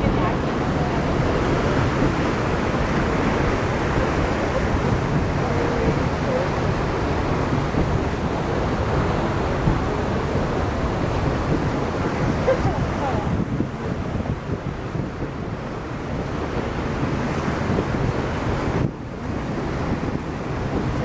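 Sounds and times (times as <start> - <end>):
water rushing in boat wake: 0.0 - 21.0
wind buffeting microphone: 0.0 - 21.0.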